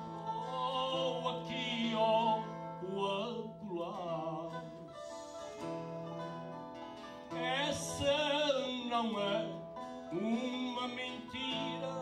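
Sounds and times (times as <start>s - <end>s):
man singing with vibrato: 0.0s - 5.7s, 7.3s - 12.0s
acoustic guitar: 0.0s - 12.0s.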